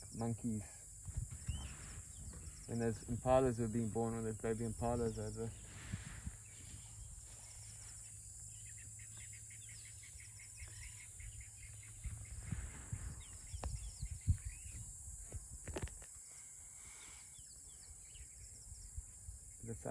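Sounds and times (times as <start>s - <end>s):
high insect drone: 0.0s - 19.9s
small birds calling: 0.0s - 19.9s.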